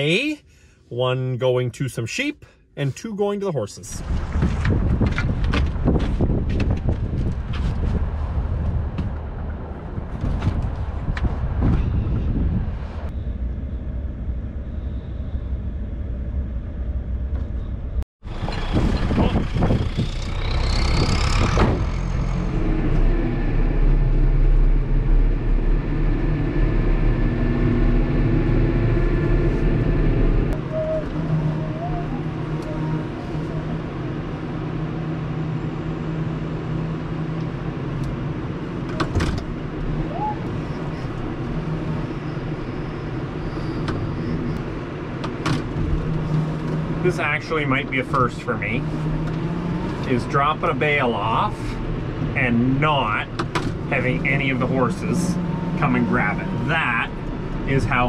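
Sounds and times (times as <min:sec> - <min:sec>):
rising whine: 0:08.2 - 0:45.0, 0:45.8 - 0:58.0
tractor engine running: 0:13.4 - 0:31.6.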